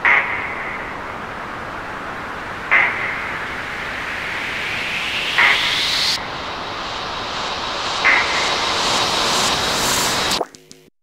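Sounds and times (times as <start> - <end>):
electronic noise swell: 0.0 - 10.7
rising whoosh: 0.6 - 10.5.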